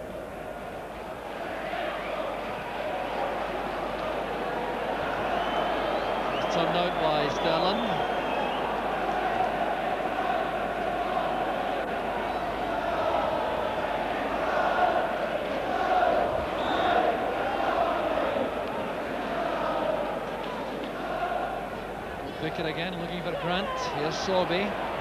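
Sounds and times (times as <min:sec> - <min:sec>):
stadium crowd chanting and singing: 0:00.0 - 0:25.0.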